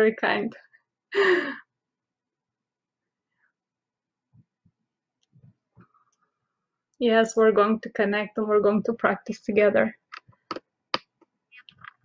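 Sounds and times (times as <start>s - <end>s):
woman's breathy sigh: 1.1s - 1.7s.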